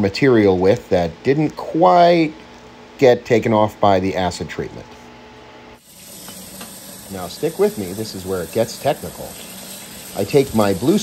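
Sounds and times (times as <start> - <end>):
tap running into metal sink: 6.0 - 8.2.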